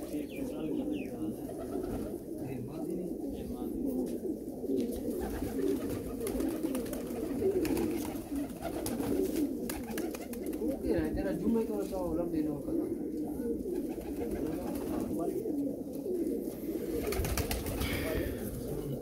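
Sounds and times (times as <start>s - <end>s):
pigeons cooing: 0.0s - 19.0s.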